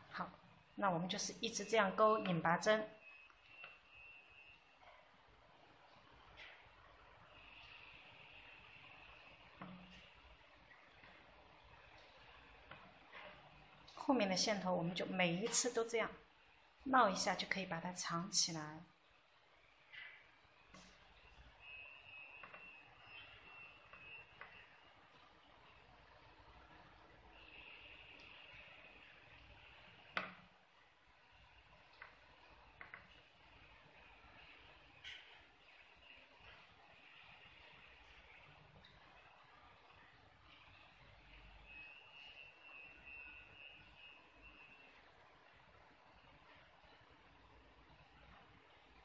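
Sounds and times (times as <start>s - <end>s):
faint high-pitched whine: 0.0s - 49.0s.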